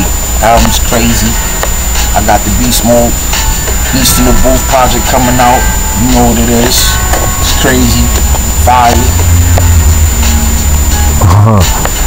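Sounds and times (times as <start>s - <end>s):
loud low rumble: 3.8s - 11.6s.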